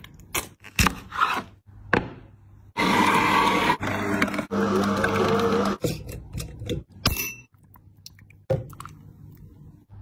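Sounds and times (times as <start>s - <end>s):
juicer motor grinding hum: 2.8s - 5.8s.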